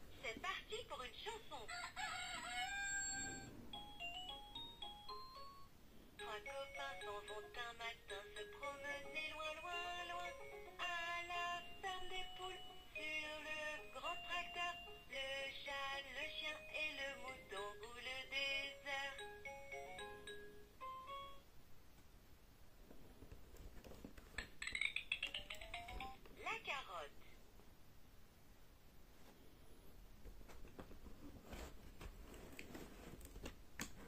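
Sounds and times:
rooster crowing: 0:01.7 - 0:03.6
simple backing music: 0:03.2 - 0:21.5.

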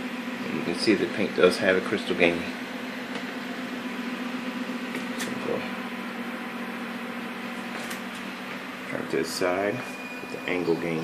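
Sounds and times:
projector cooling fan whirring: 0:00.0 - 0:11.0.

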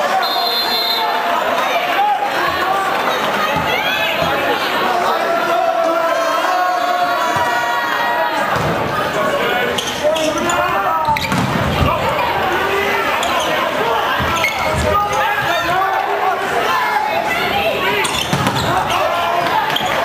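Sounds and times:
crowd voices and shouts: 0:00.0 - 0:20.0
sneakers squeaking: 0:08.5 - 0:12.4, 0:13.0 - 0:15.8, 0:17.5 - 0:20.0.

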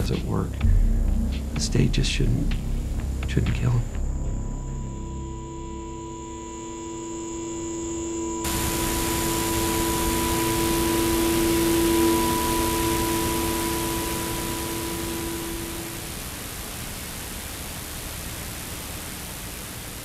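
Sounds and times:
droning chord: 0:00.0 - 0:16.6
television static hiss: 0:03.2 - 0:04.0, 0:05.1 - 0:20.0.

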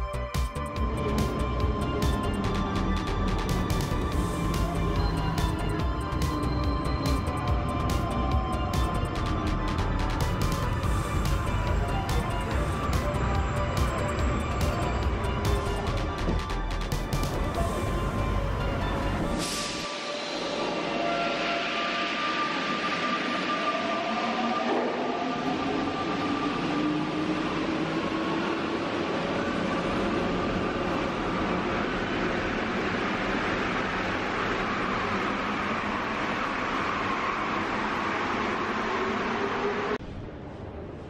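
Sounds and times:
train running noise: 0:00.0 - 0:41.0.

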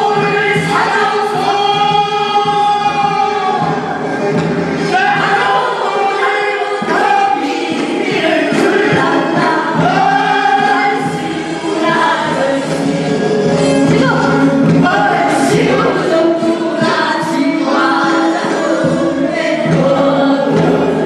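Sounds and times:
men and women singing in chorus: 0:00.0 - 0:21.0.

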